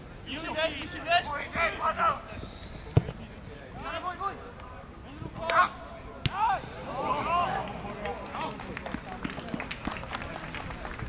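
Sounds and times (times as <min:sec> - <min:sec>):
footballers shouting: 0:00.3 - 0:02.4, 0:03.7 - 0:10.1.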